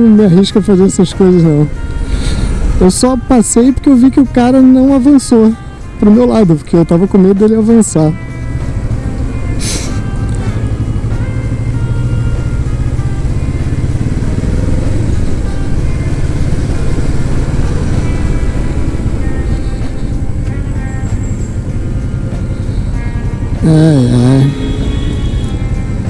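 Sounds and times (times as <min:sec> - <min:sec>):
motorcycle engine running: 0:00.0 - 0:26.0
brief hiss: 0:09.6 - 0:10.0.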